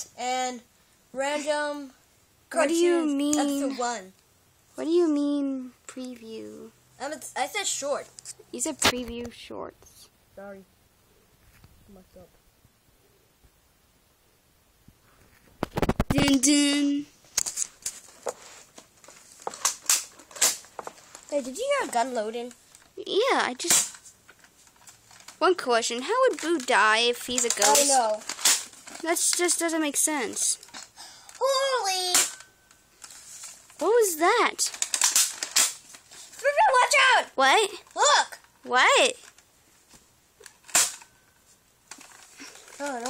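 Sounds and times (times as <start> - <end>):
sharp clicks and clatters: 19.0 - 34.0, 34.6 - 36.6.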